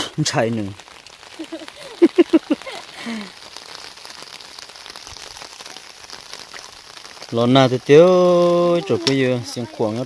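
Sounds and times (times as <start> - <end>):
rain pattering: 0.0 - 10.0
person speaking: 8.0 - 10.0.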